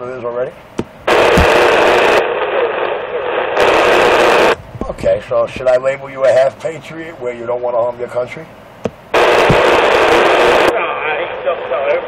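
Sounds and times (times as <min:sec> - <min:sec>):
radio static hiss: 0:01.0 - 0:12.0.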